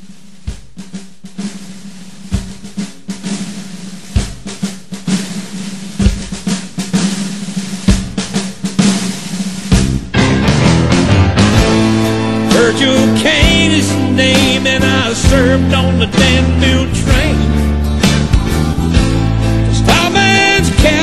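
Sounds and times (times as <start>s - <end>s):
snare drum roll: 0.0s - 21.0s
full band playing: 1.6s - 21.0s
bass drum hits: 9.6s - 21.0s.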